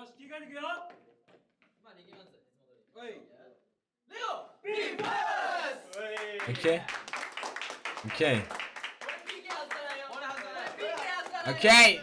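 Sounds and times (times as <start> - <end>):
young men shouting together: 4.1 - 5.9.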